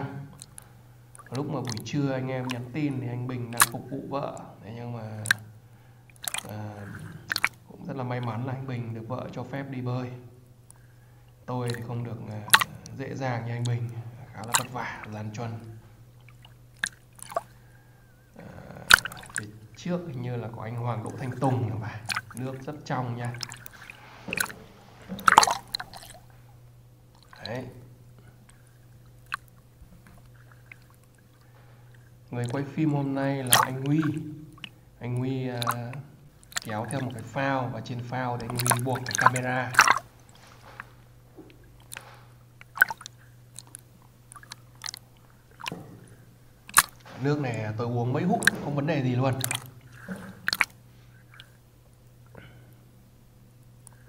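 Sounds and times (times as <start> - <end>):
low steady hum: 0.0 - 54.0
water splashes and drips: 0.3 - 3.9, 5.2 - 5.5, 6.1 - 8.5, 11.6 - 17.8, 18.9 - 19.9, 20.6 - 51.6.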